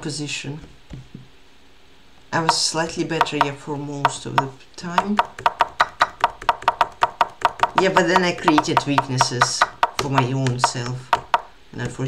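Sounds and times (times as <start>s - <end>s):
fast typing on keyboard: 3.2s - 12.0s.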